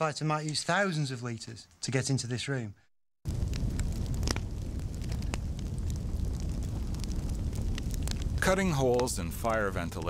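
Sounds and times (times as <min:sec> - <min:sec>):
fire roaring and crackling: 0:03.2 - 0:10.0.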